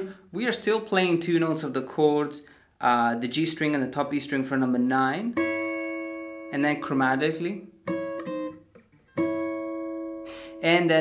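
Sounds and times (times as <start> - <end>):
acoustic guitar fingerpicked: 5.3 - 11.0.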